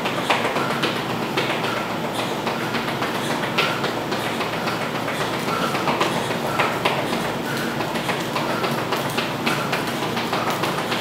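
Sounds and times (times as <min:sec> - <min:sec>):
sneakers tapping and squeaking on tiles: 0:01.5 - 0:10.6.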